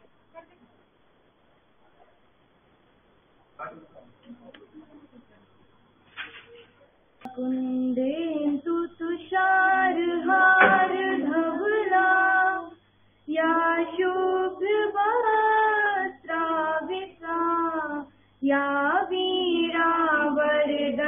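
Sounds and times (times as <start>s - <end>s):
woman singing a slow hymn: 7.3s - 21.0s.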